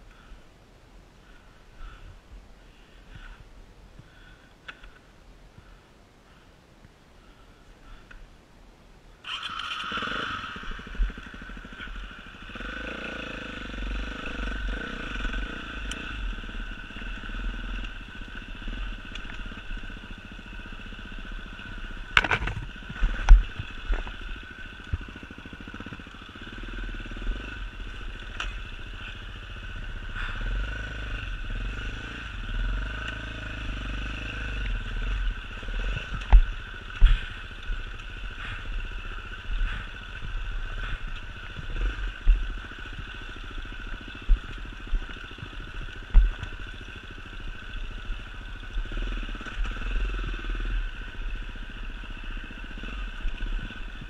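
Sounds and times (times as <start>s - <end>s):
motorcycle engine revving: 9.3s - 54.0s.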